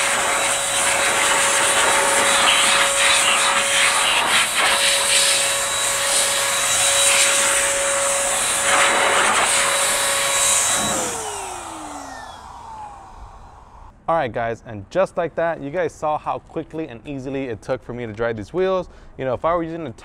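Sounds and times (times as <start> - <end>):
electric blower whining: 0.0 - 14.0.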